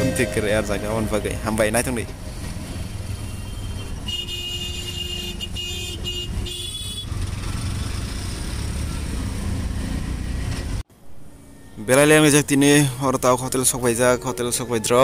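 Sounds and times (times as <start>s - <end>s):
auto-rickshaw engine rumbling: 0.0s - 15.0s
city traffic noise: 0.0s - 15.0s
vehicle horns: 3.1s - 7.2s.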